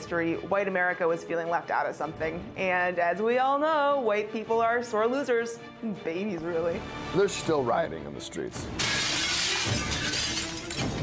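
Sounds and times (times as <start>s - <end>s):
music: 0.0s - 11.0s
glass shattering: 8.8s - 11.0s.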